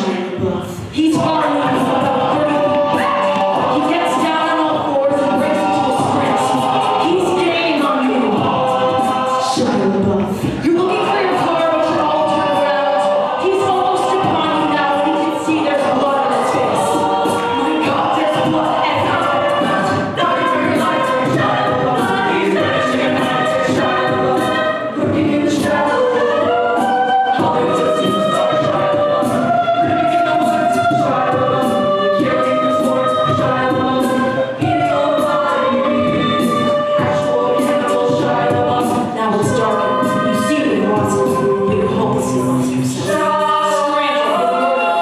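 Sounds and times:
a cappella group singing: 0:00.0 - 0:45.0
woman singing lead: 0:00.0 - 0:45.0.

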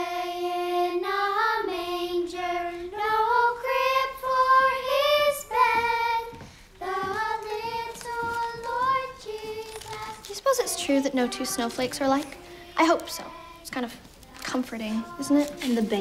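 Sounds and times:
girl singing: 0:00.0 - 0:16.0.

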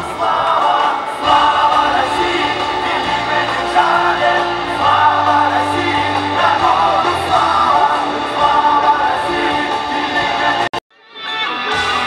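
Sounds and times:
choir singing: 0:00.0 - 0:10.8.

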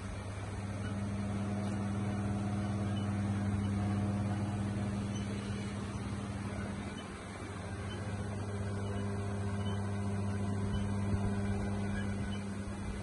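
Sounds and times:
steady low machine hum: 0:00.0 - 0:13.0.

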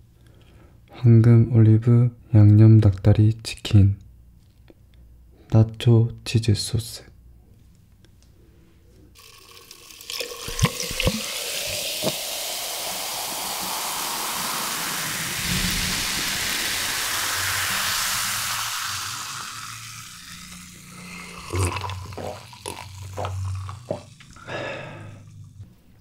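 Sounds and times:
fizzing cola pouring over ice: 0:09.2 - 0:25.2
swallowing gulps: 0:20.3 - 0:25.8.

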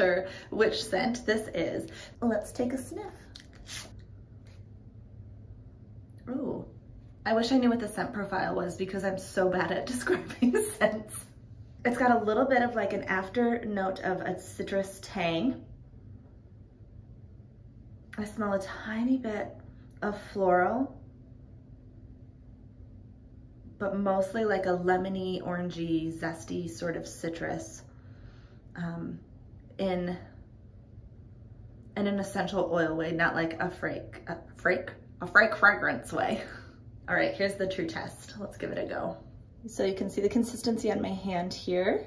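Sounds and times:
faint low hum: 0:00.0 - 0:42.0.

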